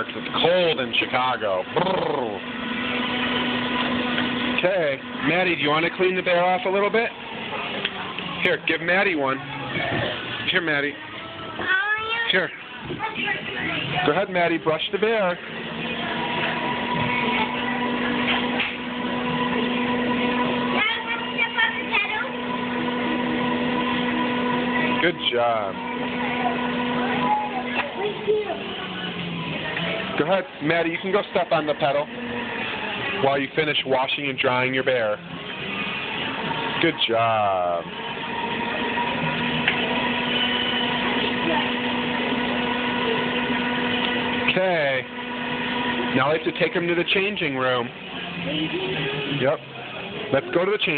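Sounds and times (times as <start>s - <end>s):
air blower rushing hum: 0.0s - 50.9s
voices: 4.1s - 50.9s.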